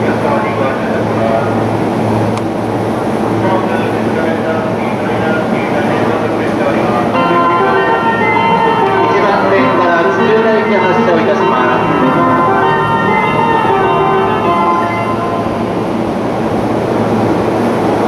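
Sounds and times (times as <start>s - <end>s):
low steady hum: 0.0s - 18.0s
indistinct voices: 3.7s - 16.2s
chiming melody over speakers: 7.2s - 16.2s.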